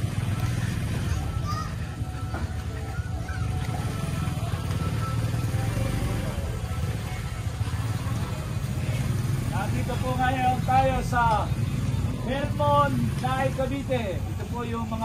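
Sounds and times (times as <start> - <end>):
motorcycle engine rumbling: 0.0 - 15.0.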